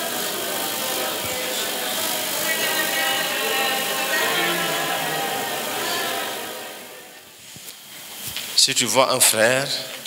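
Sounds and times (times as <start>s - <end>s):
congregation praying aloud: 0.0s - 7.3s.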